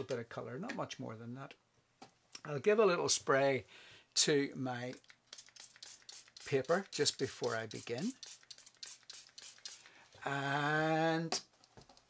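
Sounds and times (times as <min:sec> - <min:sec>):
spray bottle hissing spurts: 0:05.0 - 0:10.0.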